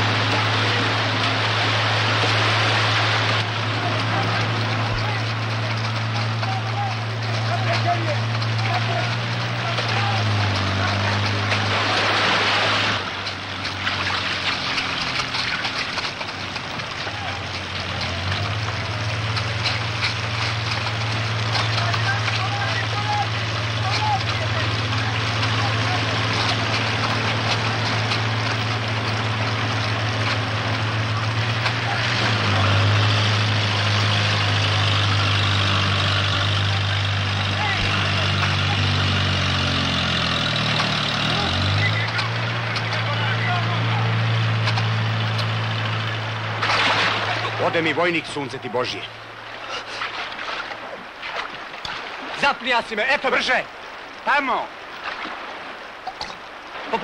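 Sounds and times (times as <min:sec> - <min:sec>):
heavy engine running: 0:00.0 - 0:50.0.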